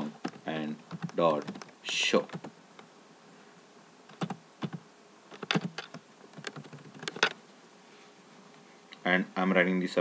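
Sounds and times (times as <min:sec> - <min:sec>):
keyboard typing: 0:00.2 - 0:02.5, 0:04.1 - 0:04.8, 0:05.4 - 0:07.4.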